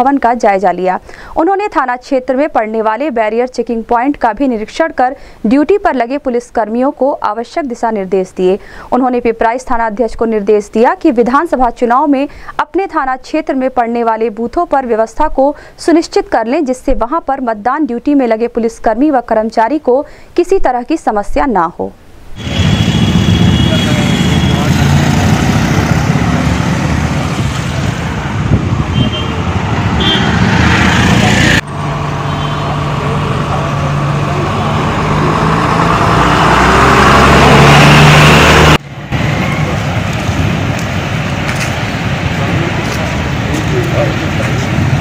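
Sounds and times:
road noise: 0:00.0 - 0:15.8, 0:22.0 - 0:45.0
vehicle engines running: 0:22.4 - 0:45.0.

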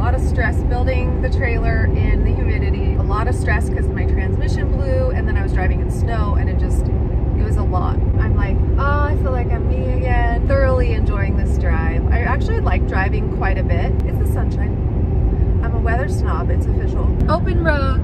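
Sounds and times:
woman talking: 0:00.0 - 0:14.7, 0:15.6 - 0:18.0
low steady hum: 0:00.0 - 0:18.0
road and engine noise: 0:00.0 - 0:18.0.

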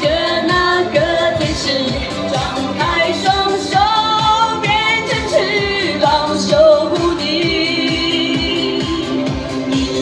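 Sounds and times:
woman singing into microphone: 0:00.0 - 0:09.3
backing track with steady beat: 0:00.0 - 0:10.0.

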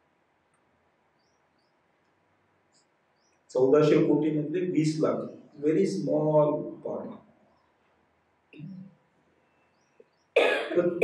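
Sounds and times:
man coughing into microphone: 0:10.4 - 0:11.0.

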